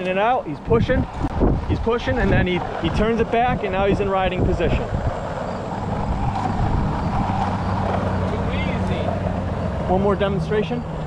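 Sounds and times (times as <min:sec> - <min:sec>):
longboard wheels rolling on asphalt: 0:00.0 - 0:11.0.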